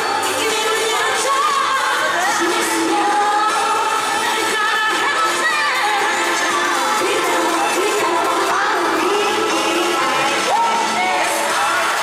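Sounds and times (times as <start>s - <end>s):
backing track over sound system: 0.0s - 12.0s
female group singing pop song: 0.0s - 12.0s
audience cheering and whooping: 10.0s - 12.0s.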